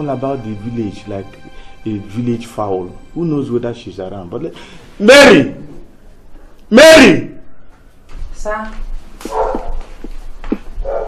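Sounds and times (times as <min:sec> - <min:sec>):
dog barking: 0:09.2 - 0:09.9, 0:10.8 - 0:11.0.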